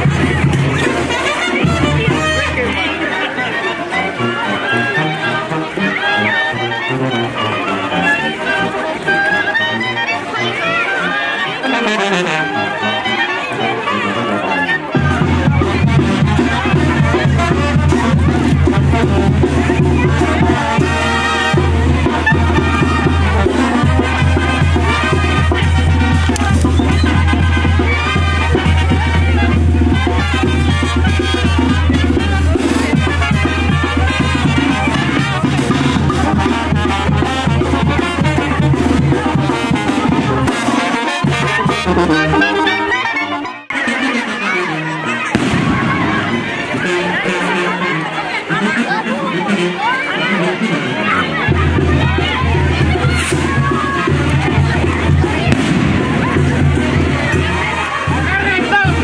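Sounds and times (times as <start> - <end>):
brass band playing dance tune: 0.0 - 59.0
crowd talking: 0.0 - 59.0
heavy steady bass: 55.6 - 57.3.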